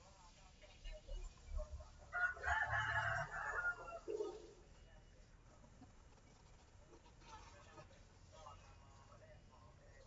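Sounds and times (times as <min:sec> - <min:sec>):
faint rooster crowing: 0:02.0 - 0:04.6.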